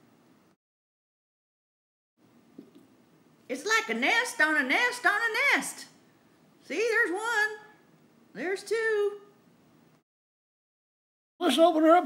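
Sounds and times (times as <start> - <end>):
faint room hiss: 0.0 - 0.6, 2.2 - 10.0.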